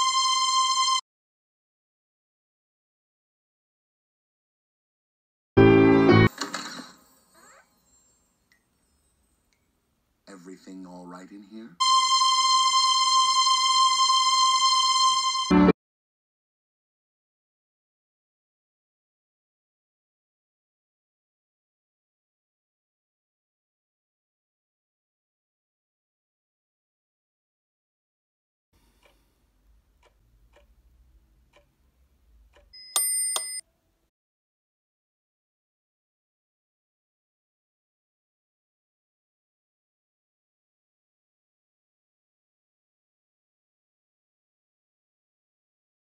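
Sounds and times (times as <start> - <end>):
stopwatch ticking: 29.0 - 33.6.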